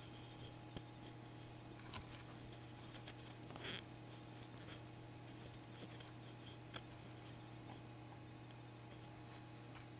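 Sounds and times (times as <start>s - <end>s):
low electrical hum: 0.0s - 9.9s.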